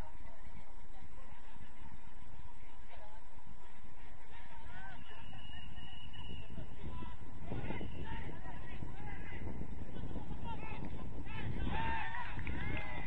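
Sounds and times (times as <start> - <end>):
steady low background noise: 0.0 - 13.0.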